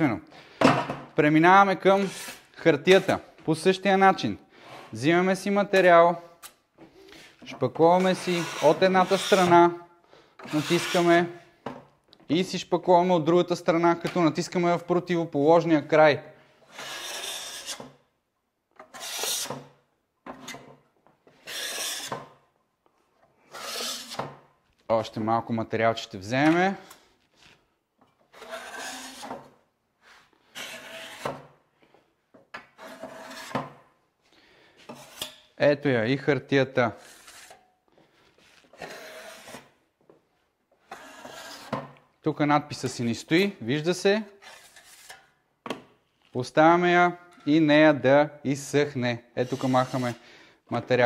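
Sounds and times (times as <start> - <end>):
blade scraping joint compound: 5.8 - 9.6, 10.4 - 11.4, 16.6 - 18.0, 18.8 - 22.4, 23.2 - 24.4, 26.4 - 31.6, 32.3 - 33.8, 34.8 - 35.5, 37.0 - 37.7, 38.4 - 39.8, 40.8 - 42.0, 44.4 - 45.8, 49.4 - 50.2.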